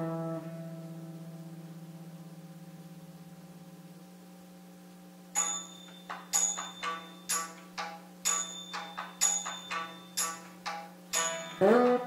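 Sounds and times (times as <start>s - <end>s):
veena drone note: 0.0s - 2.4s.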